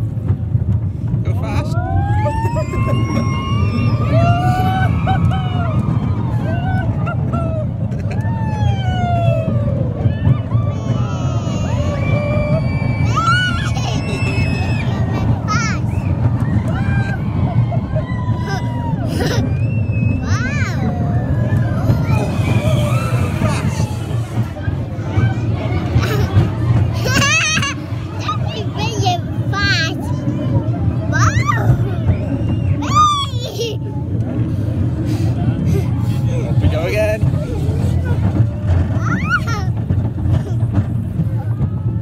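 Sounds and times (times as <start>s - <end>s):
rollercoaster rumble: 0.0s - 42.0s.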